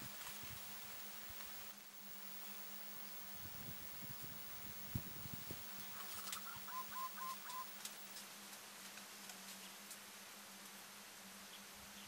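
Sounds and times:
bird calling: 5.6s - 8.1s
faint ticks: 5.8s - 10.0s.

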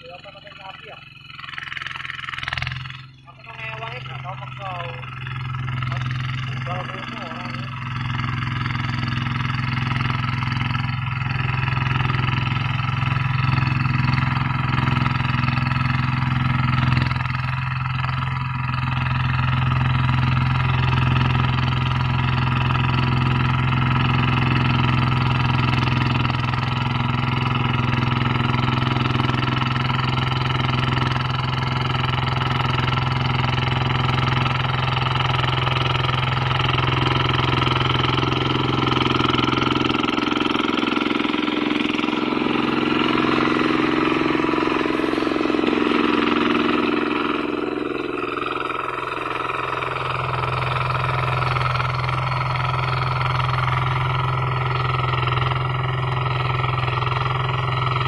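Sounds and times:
diesel engine running under load: 0.0s - 58.0s.

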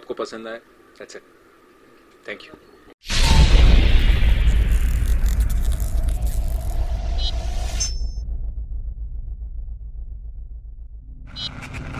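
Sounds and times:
deep boom tail: 3.1s - 11.4s.

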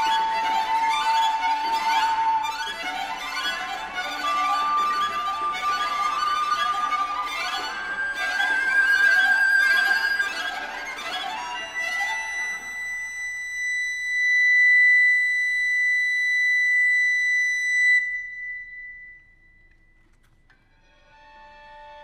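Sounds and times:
bowed strings: 0.0s - 13.2s.

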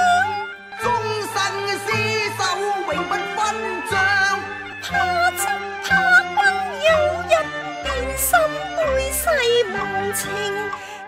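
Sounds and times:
traditional instrumental accompaniment: 0.0s - 11.0s
woman singing opera: 0.0s - 11.0s.

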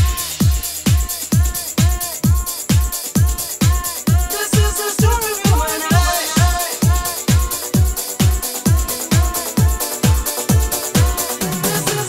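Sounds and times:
kick drum: 0.0s - 12.0s
steady hi-hats: 0.0s - 12.0s.

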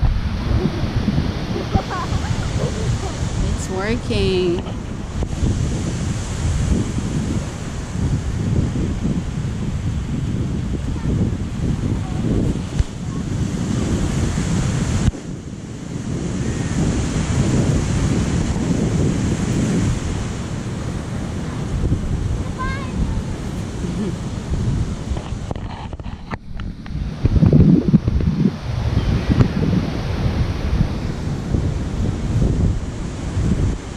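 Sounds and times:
ocean surf: 0.0s - 33.9s
wind buffeting microphone: 0.0s - 33.9s.

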